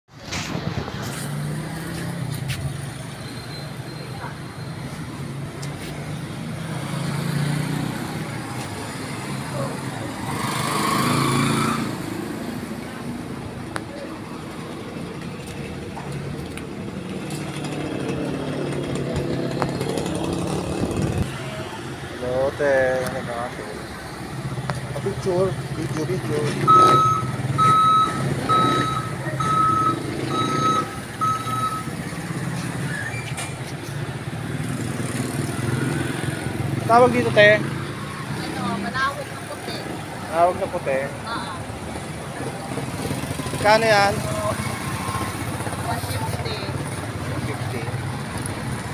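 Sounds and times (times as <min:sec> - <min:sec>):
street traffic engines: 0:00.1 - 0:48.9
reversing beeper beeps: 0:26.6 - 0:32.0.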